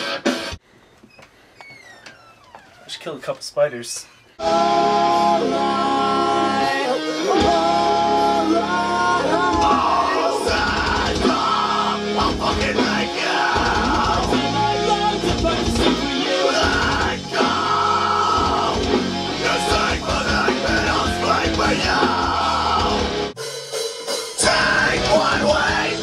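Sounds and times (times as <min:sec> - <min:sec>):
electric guitars: 0:04.4 - 0:23.3, 0:24.4 - 0:26.0
rock song with vocals: 0:04.4 - 0:23.4, 0:24.1 - 0:26.0
heavy drums: 0:04.4 - 0:26.0.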